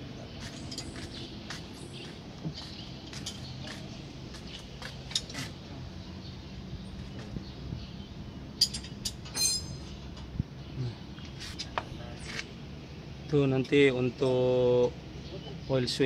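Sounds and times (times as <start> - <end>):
ringing metal clinks: 8.6 - 10.1.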